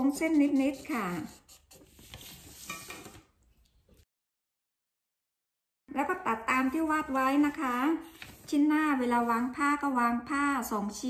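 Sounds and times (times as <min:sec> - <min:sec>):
plastic ruler scraping paper: 0:00.0 - 0:03.3
paper rustling: 0:01.7 - 0:03.3, 0:08.0 - 0:08.7.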